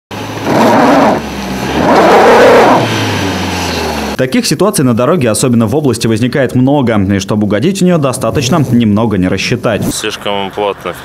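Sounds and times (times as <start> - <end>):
car engine revving: 0.1 - 4.2.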